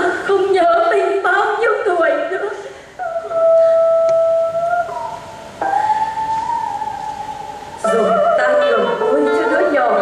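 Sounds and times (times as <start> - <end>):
solo instrument long held notes: 3.0 - 10.0.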